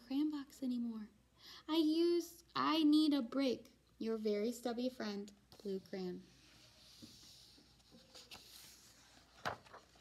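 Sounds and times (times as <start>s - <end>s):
book page turning: 6.8s - 10.0s.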